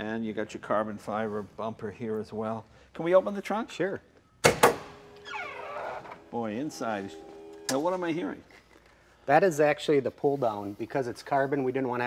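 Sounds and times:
sharp latch clicks: 0:04.4 - 0:05.0.

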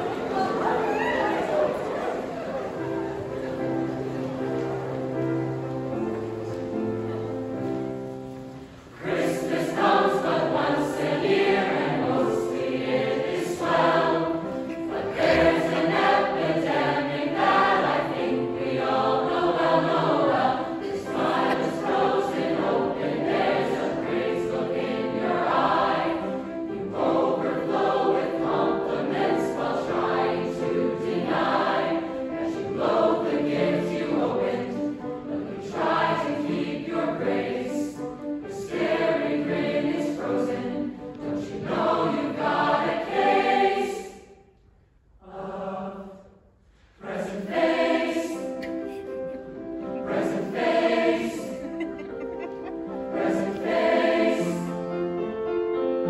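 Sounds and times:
mixed choir singing: 0:00.0 - 0:44.5, 0:45.2 - 0:55.5.

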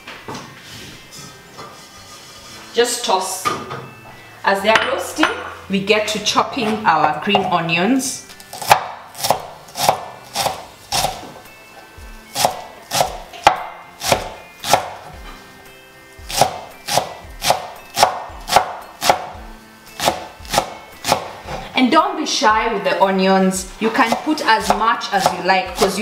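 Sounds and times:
knife chopping on wooden board: 0:08.5 - 0:11.4, 0:12.4 - 0:15.0, 0:16.3 - 0:19.3, 0:20.0 - 0:21.6, 0:24.0 - 0:26.0.

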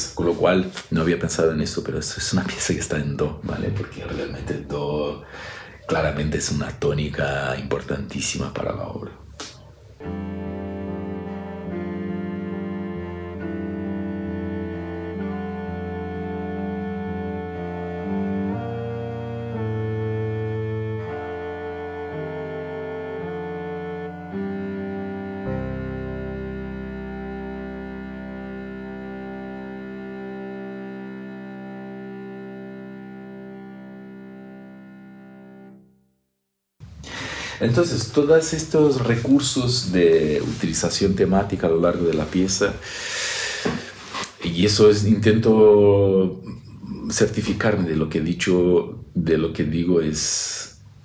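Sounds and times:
string and piano chamber music: 0:10.0 - 0:35.7.

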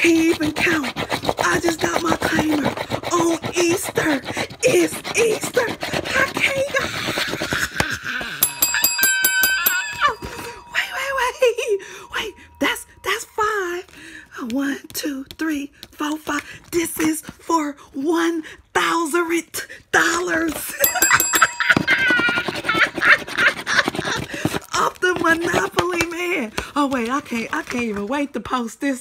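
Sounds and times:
coin scratching lottery ticket: 0:00.0 - 0:10.1
rapid metallic bell ringing: 0:08.3 - 0:13.4, 0:20.8 - 0:23.2.

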